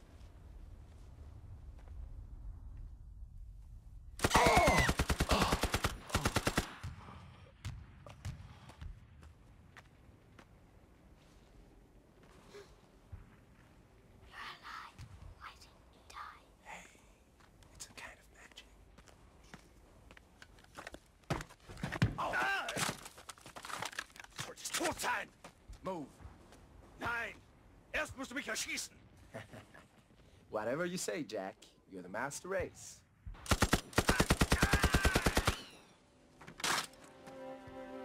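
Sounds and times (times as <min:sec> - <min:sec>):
machine gun firing rapid burst: 0:04.2 - 0:06.7, 0:33.5 - 0:35.7
man whispering: 0:14.3 - 0:19.0.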